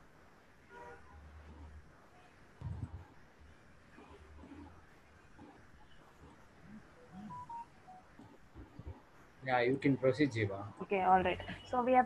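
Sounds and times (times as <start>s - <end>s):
short electronic beeps: 7.0s - 8.1s.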